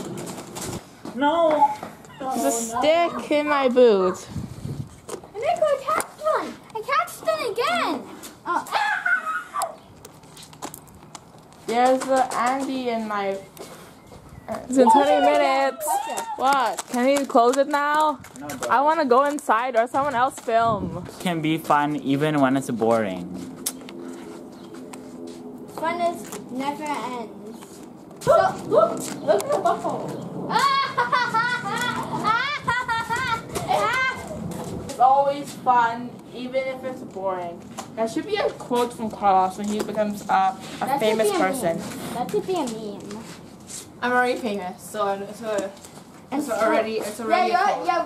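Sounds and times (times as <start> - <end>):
child squealing: 2.1 - 2.7, 8.5 - 9.8, 14.8 - 16.5
children calling out: 5.4 - 9.8, 14.7 - 16.5, 30.5 - 34.4.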